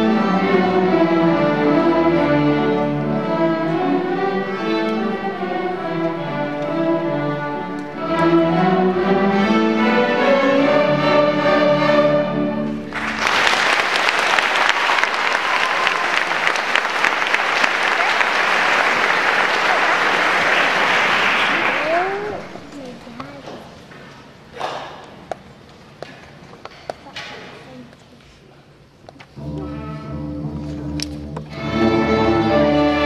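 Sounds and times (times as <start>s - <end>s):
string orchestra playing: 0.0s - 13.4s, 29.4s - 33.0s
audience applause: 12.9s - 22.6s.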